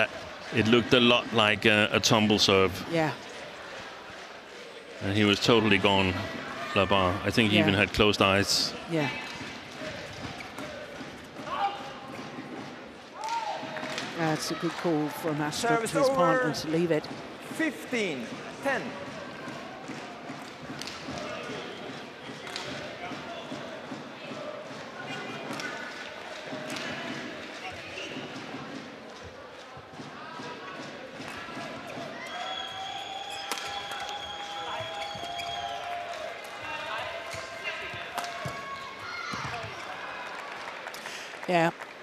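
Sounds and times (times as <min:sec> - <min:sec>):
crowd voices: 0:00.0 - 0:41.7.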